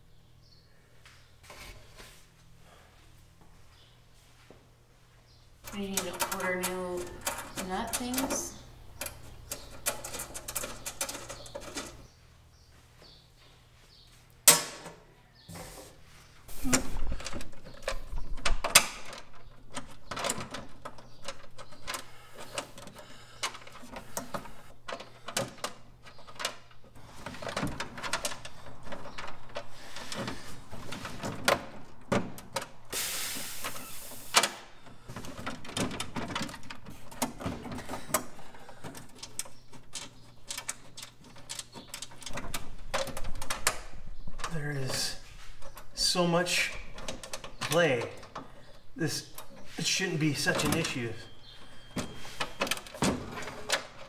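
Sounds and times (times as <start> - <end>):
parts clinking and knocking: 5.6 - 12.1, 34.8 - 49.8.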